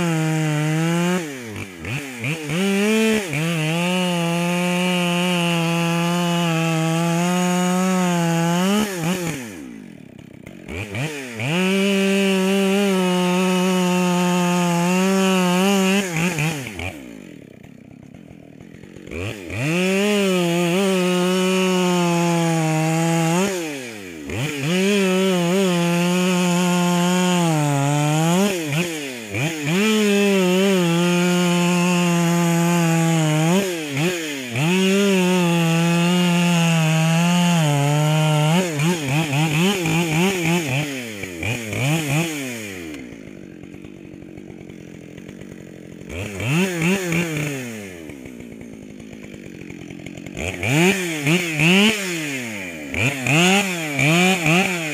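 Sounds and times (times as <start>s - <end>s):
chainsaw cutting log: 0.0s - 54.9s
chainsaw revving and idling: 0.0s - 54.9s.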